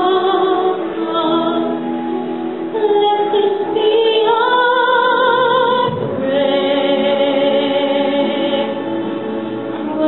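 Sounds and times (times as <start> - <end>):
woman singing with vibrato: 0.0 - 10.0.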